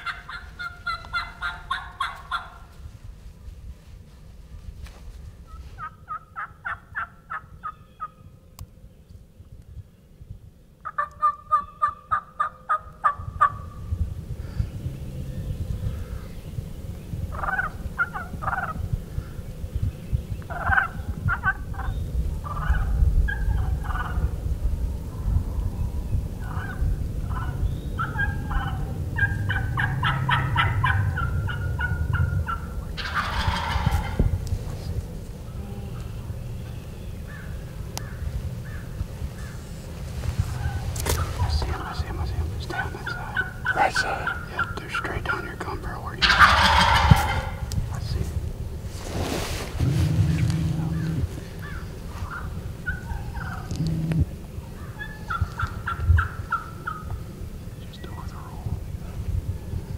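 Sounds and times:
turkeys gobbling: 0.0 - 2.8, 5.5 - 8.2, 10.8 - 13.6, 17.3 - 18.8, 20.5 - 24.3, 26.4 - 34.4, 40.5 - 47.7, 49.8 - 57.2.

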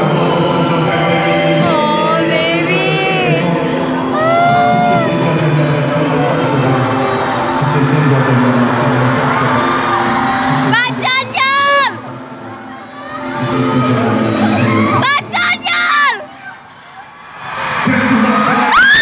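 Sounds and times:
male singer with backing music: 0.0 - 10.8
crowd noise: 0.0 - 19.0.

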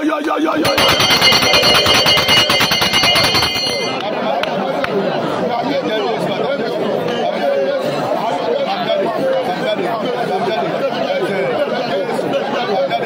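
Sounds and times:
many voices talking or praying: 0.0 - 13.0
pulsing electric bell ringing: 0.6 - 4.0.

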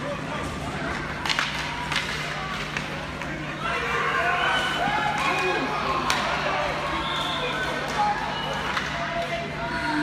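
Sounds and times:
hockey sticks and puck clacking: 0.8 - 3.4, 5.0 - 9.4.

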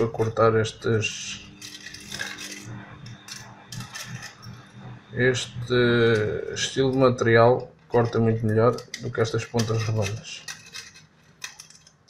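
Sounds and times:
scissors cutting foil: 0.0 - 4.7, 8.0 - 12.0
foil crinkling: 1.5 - 4.5.

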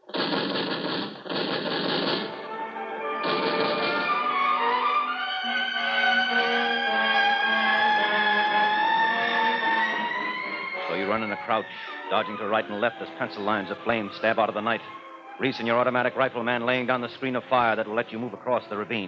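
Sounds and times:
automatic rifle fire: 0.1 - 2.5, 3.2 - 4.2
orchestral bridge music: 2.0 - 19.0.

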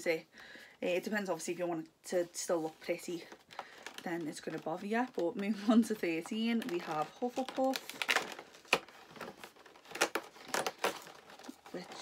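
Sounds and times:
crinkling of packaging: 2.8 - 12.0
cardboard tearing: 3.7 - 12.0.

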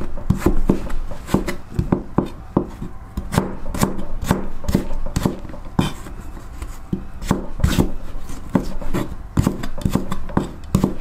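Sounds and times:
knife chopping on cutting board: 0.0 - 11.0.

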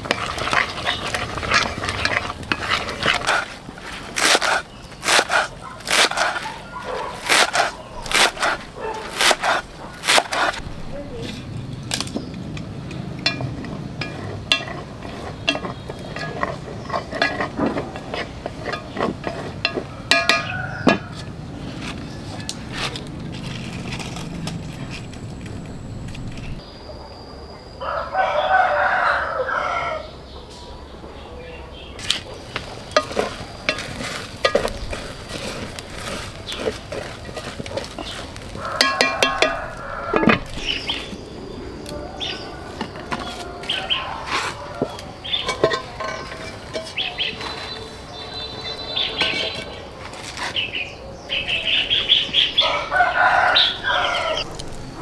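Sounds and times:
rooster crowing: 19.9 - 21.3, 27.8 - 30.2, 38.0 - 46.0, 52.5 - 54.6.

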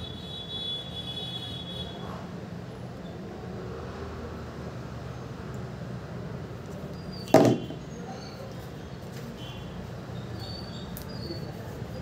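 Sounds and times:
sharp knock on a table: 7.3 - 7.8.

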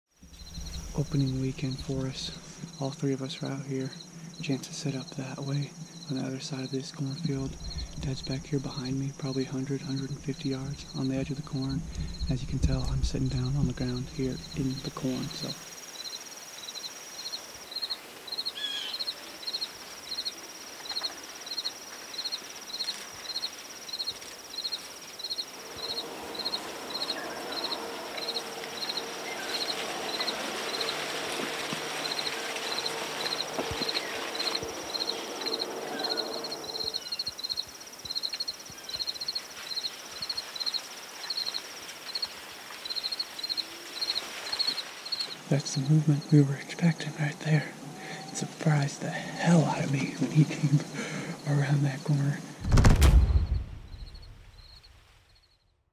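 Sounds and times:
high insect trill: 0.1 - 52.6, 53.4 - 55.6
crickets chirping: 0.1 - 55.7.

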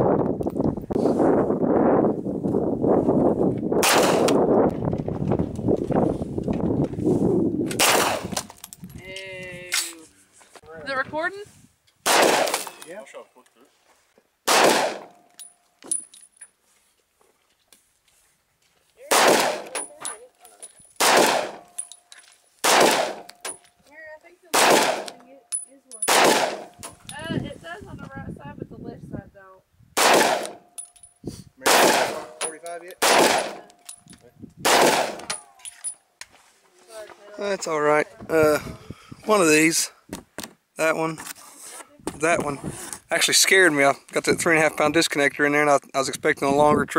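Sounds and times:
pistol shots: 3.8 - 4.4, 7.8 - 8.4, 12.0 - 12.8, 14.4 - 15.2, 19.1 - 19.8, 21.0 - 21.8, 22.6 - 23.5, 24.5 - 25.1, 26.0 - 26.8, 30.0 - 30.7, 31.6 - 32.4, 33.0 - 33.7, 34.6 - 35.4.

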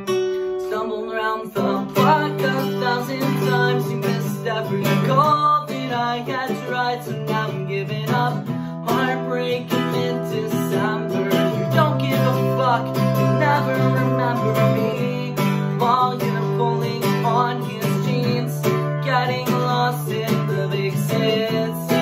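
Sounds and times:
acoustic guitar strumming: 0.0 - 22.0
man singing: 0.4 - 22.0.

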